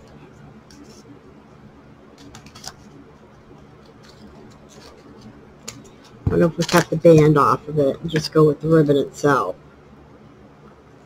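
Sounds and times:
ribbon rustling: 3.7s - 7.5s.

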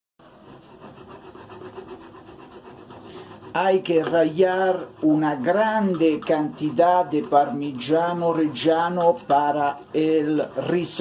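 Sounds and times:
cheese scraping on metal grater: 0.2s - 11.0s.

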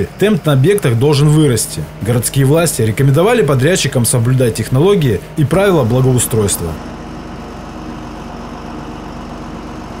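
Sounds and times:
heavy vehicle engine idling: 0.0s - 10.0s.

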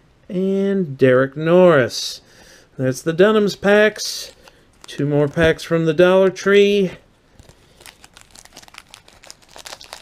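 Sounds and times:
plastic wrapper crinkling: 4.0s - 5.8s, 7.4s - 10.0s.

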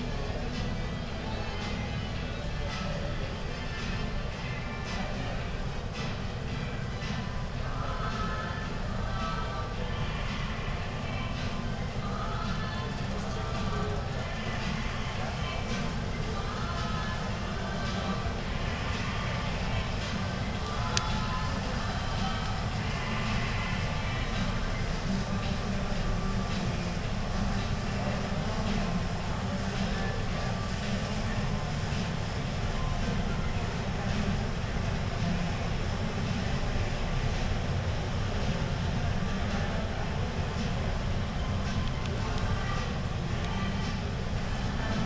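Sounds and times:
indoor hall rumble and din: 0.0s - 45.0s.

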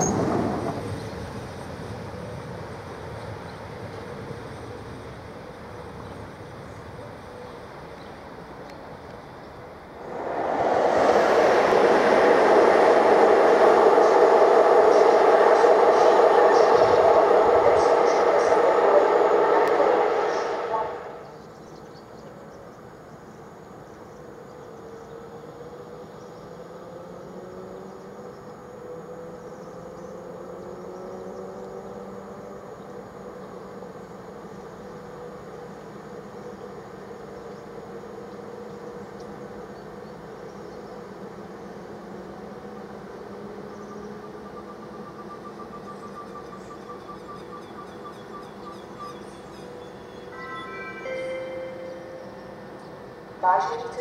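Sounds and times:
electric train whining: 0.0s - 54.0s
train passing with rushing wheels: 0.0s - 54.0s.

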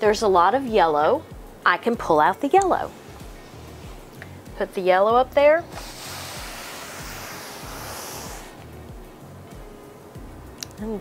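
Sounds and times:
soft background music with beat: 0.0s - 11.0s
fabric rustling against wall: 5.7s - 8.7s.

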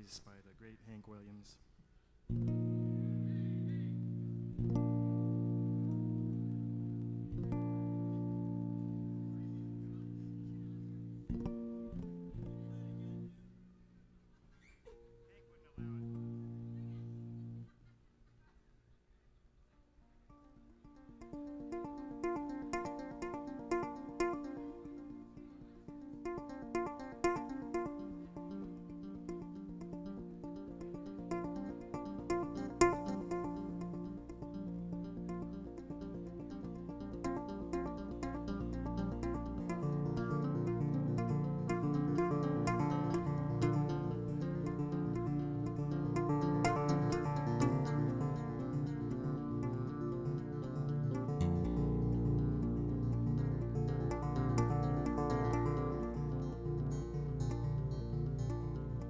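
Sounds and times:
electric bass held chord: 2.3s - 13.4s, 21.2s - 59.0s
low bass line: 2.3s - 13.4s, 15.8s - 17.7s, 26.0s - 59.0s
electric bass guitar plucked notes: 2.3s - 13.5s, 15.7s - 17.7s, 20.8s - 59.0s.

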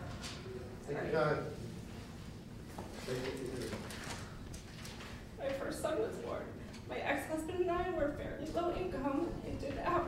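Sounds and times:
woman reading into a microphone: 5.4s - 10.0s.

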